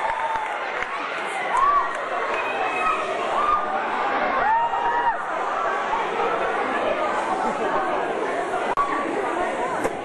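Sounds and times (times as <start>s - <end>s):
audience chattering: 0.0s - 10.0s.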